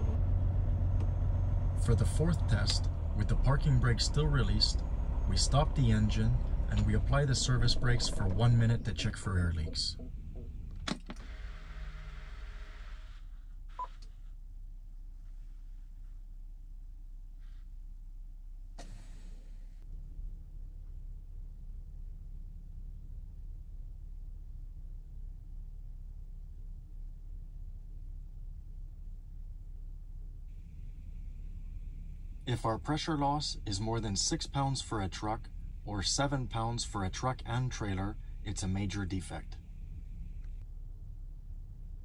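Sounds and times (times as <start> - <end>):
diesel engine running down: 0.0 - 12.9, 30.2 - 42.0
faint steady hum: 0.0 - 42.0
low steady truck cab rumble: 0.0 - 42.0.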